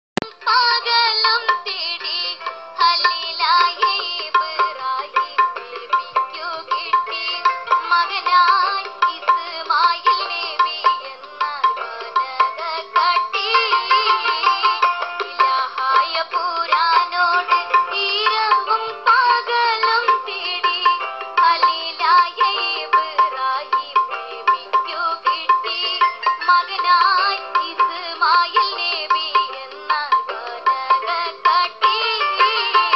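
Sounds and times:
boy singing through tinny speakers: 0:00.2 - 0:32.9.

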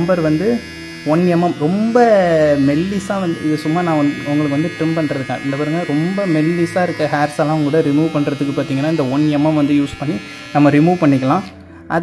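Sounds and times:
faint electric buzz: 0:00.0 - 0:11.5
man talking: 0:00.0 - 0:11.5.

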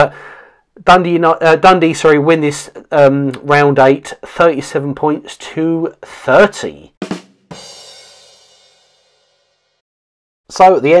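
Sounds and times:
drum hit with cymbal: 0:07.0 - 0:09.8.

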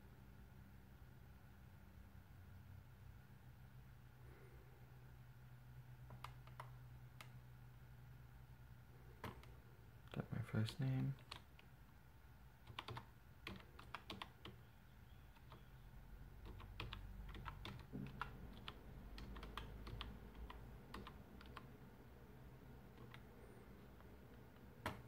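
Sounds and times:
low steady hum: 0:00.0 - 0:25.0
typing on computer keyboard: 0:06.1 - 0:06.8, 0:11.0 - 0:11.7, 0:12.6 - 0:14.6, 0:15.3 - 0:15.7, 0:16.4 - 0:21.7, 0:23.0 - 0:23.3.

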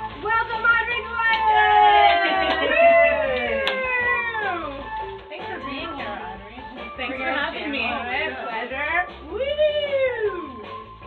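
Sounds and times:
woman cheering whoop: 0:01.2 - 0:04.7, 0:09.3 - 0:10.6.

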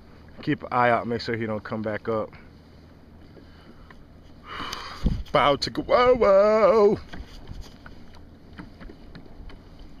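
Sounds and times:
wind and water noise: 0:00.0 - 0:10.0
boat knocks and clicks: 0:04.6 - 0:10.0.

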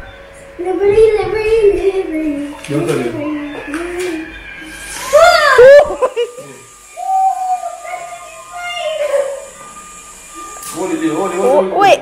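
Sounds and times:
child squealing: 0:05.0 - 0:06.0, 0:07.0 - 0:09.5.

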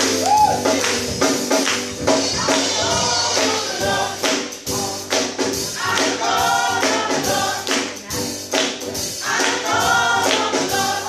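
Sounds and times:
electric keyboard accompaniment: 0:00.0 - 0:11.0
gospel group singing: 0:00.1 - 0:11.0
hand claps: 0:01.6 - 0:01.9.

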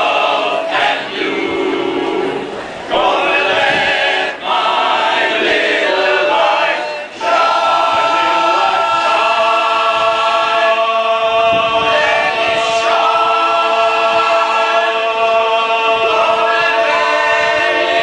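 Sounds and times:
male chorus singing a cappella: 0:00.0 - 0:18.0.

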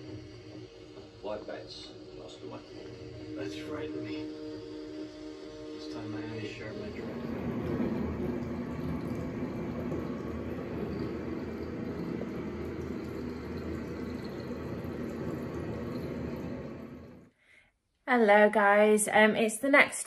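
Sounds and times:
tap water running into bathtub: 0:05.9 - 0:17.3.

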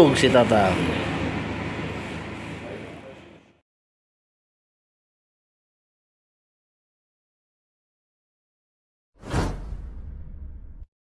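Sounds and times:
whoosh with deep rumble: 0:09.2 - 0:10.9.

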